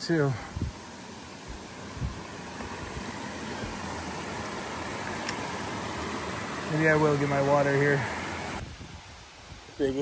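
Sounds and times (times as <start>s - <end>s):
brook running over stones: 0.9s - 8.6s.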